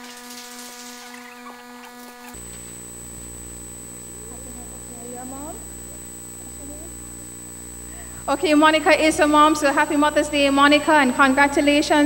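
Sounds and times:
faint steady hum: 0.0s - 12.0s
thin high whine: 0.0s - 12.0s.

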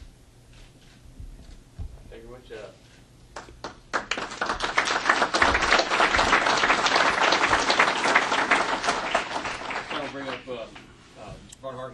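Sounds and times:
audience applauding: 3.4s - 10.9s.

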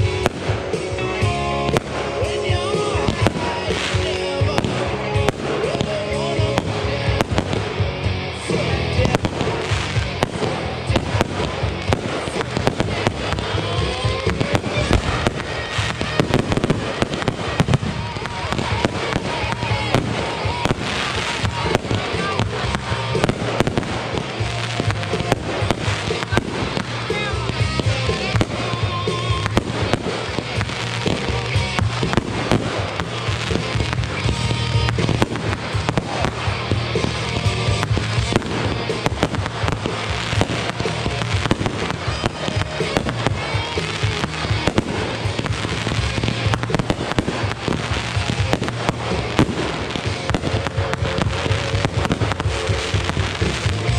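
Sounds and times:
fireworks launching and bursting: 0.0s - 53.9s.

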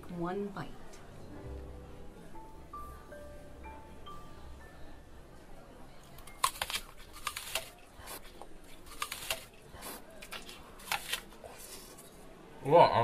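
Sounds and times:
person chewing crunchy food: 6.2s - 12.0s.

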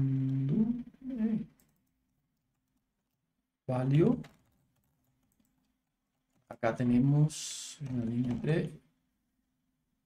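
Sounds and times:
man humming: 0.0s - 1.6s.

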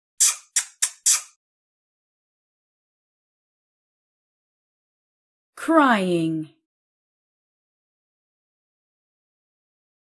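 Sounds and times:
kissing lip smacks: 0.2s - 1.4s.

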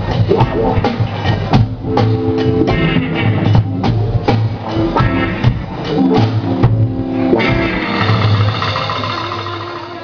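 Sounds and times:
electric guitars and bass chord: 0.0s - 10.0s
high wavering guitar note: 7.4s - 10.0s.

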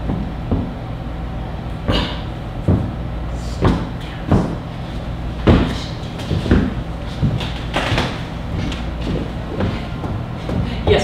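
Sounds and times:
dull knocks and thumps: 0.0s - 0.8s, 1.9s - 3.0s, 5.4s - 11.0s
low steady hum: 0.0s - 11.0s.

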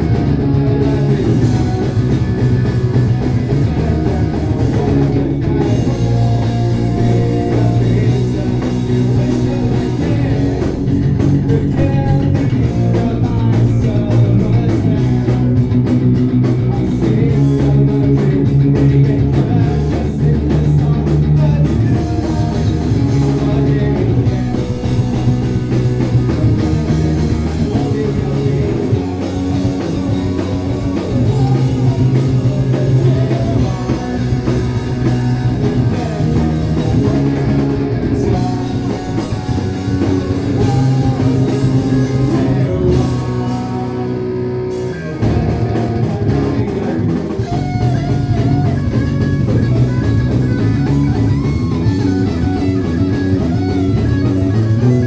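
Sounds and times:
man singing: 0.0s - 54.2s
drum kit: 0.0s - 55.0s
electric bass: 0.0s - 55.0s
electric guitar: 0.0s - 55.0s.

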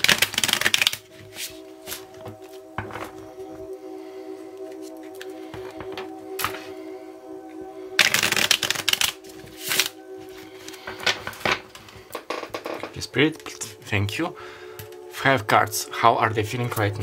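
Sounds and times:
cards riffling: 0.0s - 1.5s
cards being shuffled: 0.0s - 2.4s, 8.0s - 10.0s
soft background music: 0.0s - 17.0s.

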